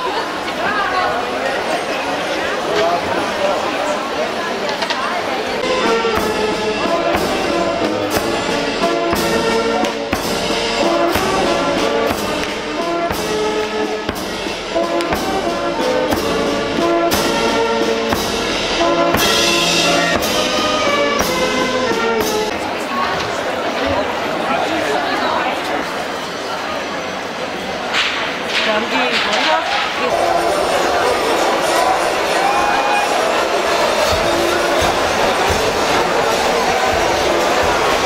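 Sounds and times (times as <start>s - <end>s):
crowd chatter: 0.0s - 38.0s
brass marching band playing: 5.6s - 22.7s, 30.0s - 38.0s.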